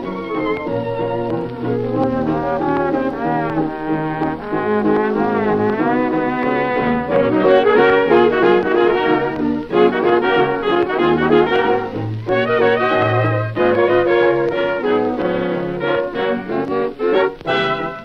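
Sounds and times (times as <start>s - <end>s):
dance orchestra with brass: 0.0s - 18.0s.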